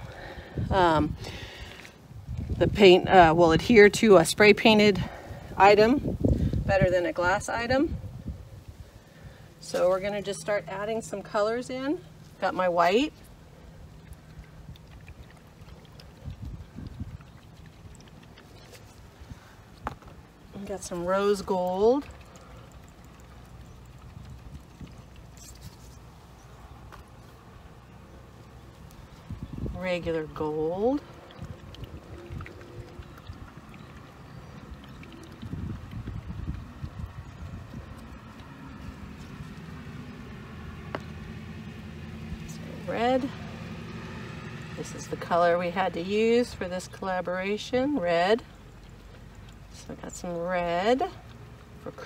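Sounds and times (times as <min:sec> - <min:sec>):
wind rumble on microphone: 0:00.0 - 0:10.2, 0:14.4 - 0:22.0, 0:23.6 - 0:26.5, 0:28.8 - 0:43.9.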